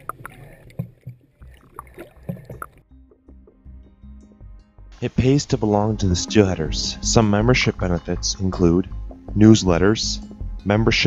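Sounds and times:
dull thumps: 0.0 - 2.8
underwater sloshing and knocking: 0.0 - 3.3.

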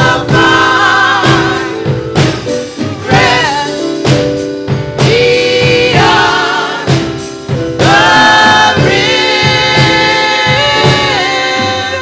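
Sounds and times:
drums steady beat: 0.0 - 12.0
gospel choir singing a hymn: 0.0 - 12.0.

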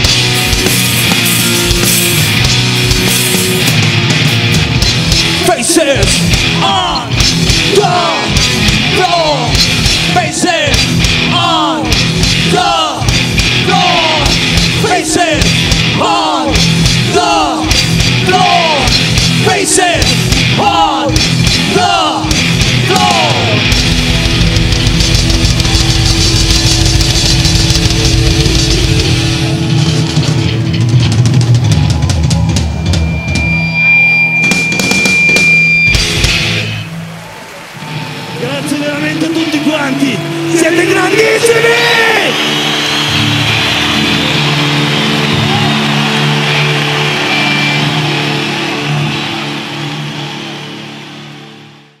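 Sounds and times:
fast drumming and cymbals: 0.0 - 36.8
distorted guitar and bass drone: 0.0 - 52.0
heavy metal band playing: 0.0 - 52.0.

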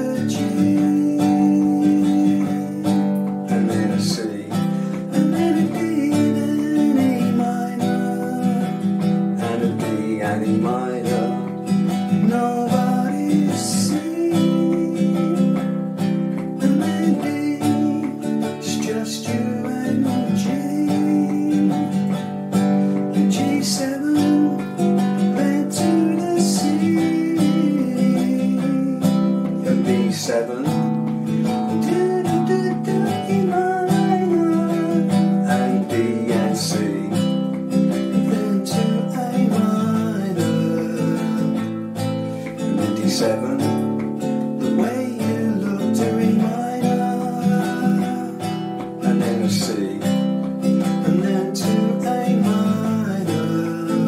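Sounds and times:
man singing: 0.0 - 54.0
nylon-string guitar strummed: 0.0 - 54.0.

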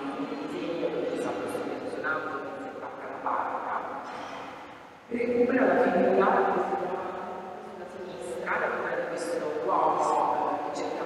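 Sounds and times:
woman speaking into microphone: 0.0 - 4.1, 5.1 - 11.0.

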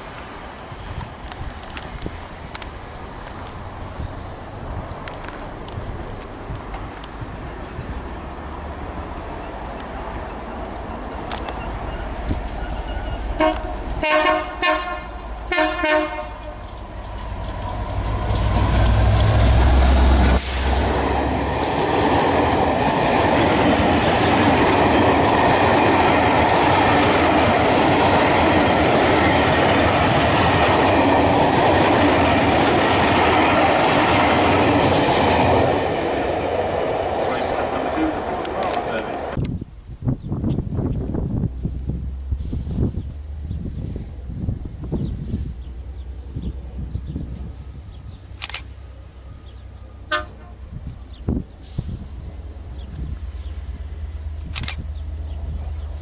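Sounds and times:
train carriages rolling past: 0.0 - 39.4
train wheels on rails: 0.0 - 39.4, 44.6 - 56.0
wind rumble on microphone: 0.5 - 9.1, 39.1 - 48.4, 50.3 - 56.0
locomotive air horn toot: 11.6 - 16.7, 50.1 - 50.6.

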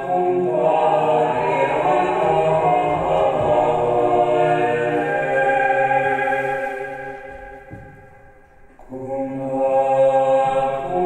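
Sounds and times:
chant-like voices holding a chord: 0.0 - 11.0.

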